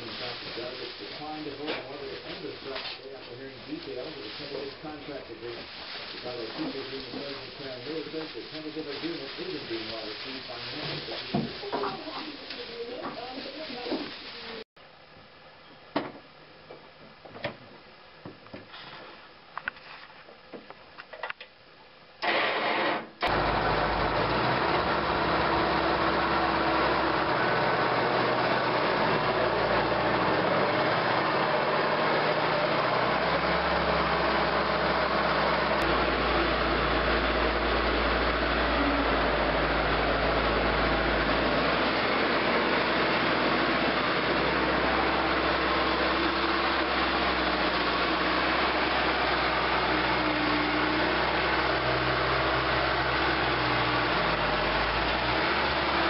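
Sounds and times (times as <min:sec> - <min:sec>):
loader engine running: 0:23.2 - 0:56.0.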